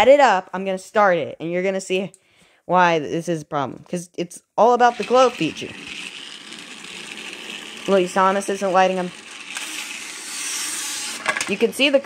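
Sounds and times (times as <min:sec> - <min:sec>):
toy train motor whirring: 0:04.8 - 0:12.0.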